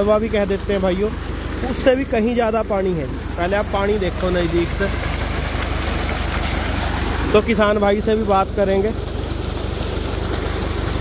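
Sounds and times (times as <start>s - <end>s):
tractor engine running at low throttle: 0.0s - 11.0s
water pouring from a pipe: 0.0s - 11.0s.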